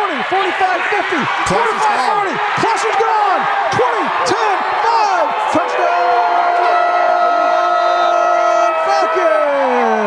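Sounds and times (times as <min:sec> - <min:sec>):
crowd cheering: 0:00.0 - 0:10.0
long drawn-out shout: 0:00.9 - 0:10.0.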